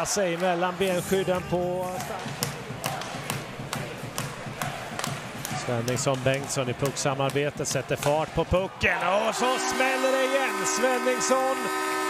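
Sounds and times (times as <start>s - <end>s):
arena crowd: 0.0s - 12.0s
hockey sticks clacking on puck: 5.0s - 8.4s.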